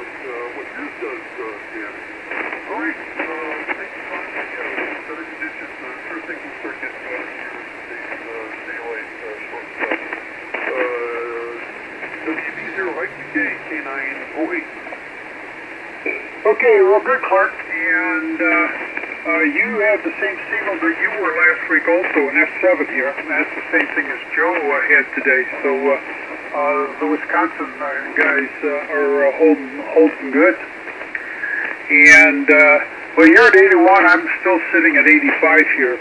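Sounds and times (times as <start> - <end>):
radio band noise: 0.0 - 36.0
tinny radio speech: 0.2 - 10.0, 10.6 - 14.7, 16.1 - 36.0.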